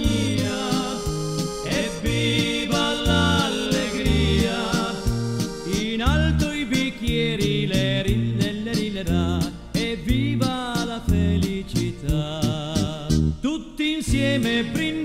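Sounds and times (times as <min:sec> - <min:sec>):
dance band music: 0:00.0 - 0:06.8.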